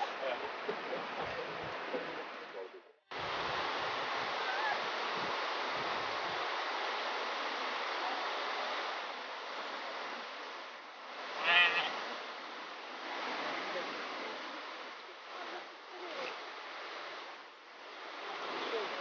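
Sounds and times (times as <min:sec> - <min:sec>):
sheep bleating: 0:11.4 - 0:12.0.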